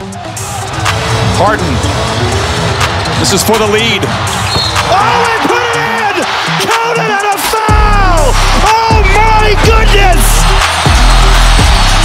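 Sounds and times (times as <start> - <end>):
arena crowd noise: 0.0 - 12.0
music: 0.0 - 12.0
sneakers squeaking: 4.2 - 5.0.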